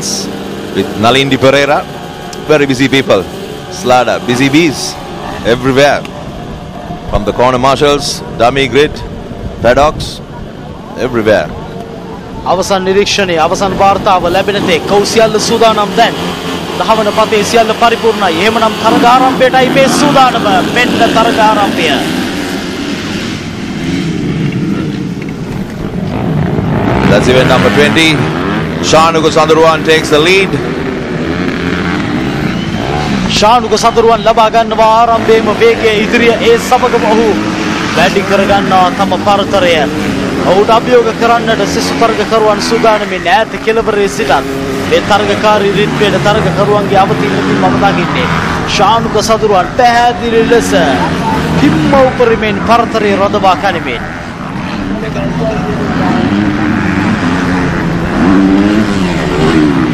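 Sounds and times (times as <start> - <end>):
motorcycle engines revving: 0.0 - 59.9.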